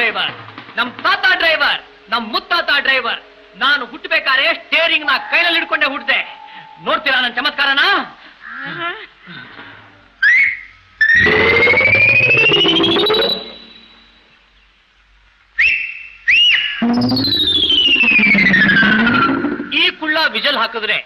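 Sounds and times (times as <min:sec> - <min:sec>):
wavering lower tone: 0:02.2 - 0:07.4, 0:16.8 - 0:19.7
whistles: 0:10.2 - 0:14.2, 0:15.5 - 0:19.4
electronic gliding tone: 0:11.1 - 0:14.0, 0:16.8 - 0:19.8.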